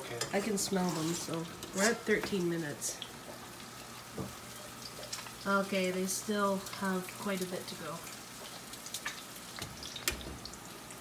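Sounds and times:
food sizzling: 0.0s - 11.0s.

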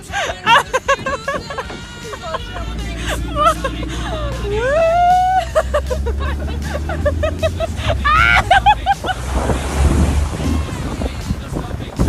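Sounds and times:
people shrieking and laughing: 0.0s - 9.6s
truck engine rumbling: 0.0s - 12.0s
water splashing: 5.4s - 12.0s.

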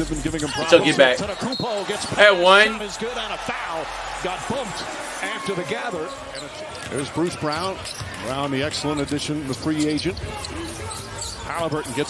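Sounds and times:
commentator talking: 0.0s - 6.2s.

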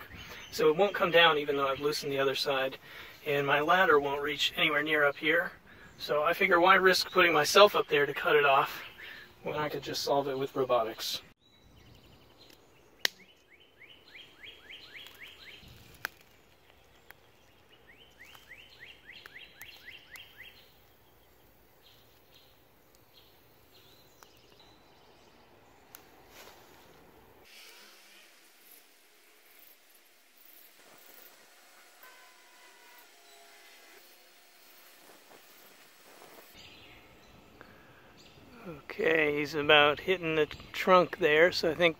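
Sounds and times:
songbird singing: 0.0s - 27.4s, 30.4s - 41.9s
faint outdoor ambience: 0.0s - 41.9s.

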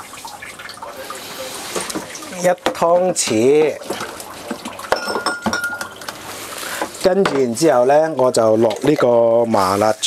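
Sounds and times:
kitchenware knocks and clinks: 1.8s - 6.2s, 7.2s - 7.6s.

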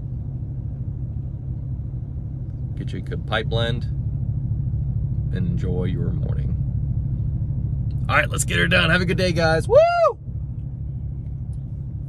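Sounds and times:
vehicle engine rumble inside cab: 0.0s - 12.0s.

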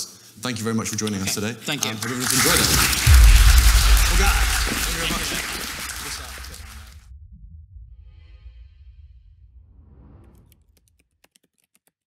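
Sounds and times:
low rumble: 2.9s - 10.4s.

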